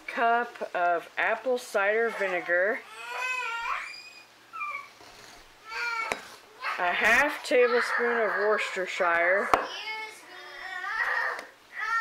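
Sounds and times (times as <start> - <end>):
pet crying: 2.1 - 5.0.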